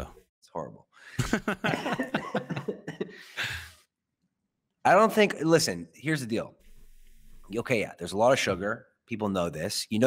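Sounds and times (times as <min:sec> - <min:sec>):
man laughing: 0:01.2 - 0:03.8
man sighing: 0:03.0 - 0:03.8.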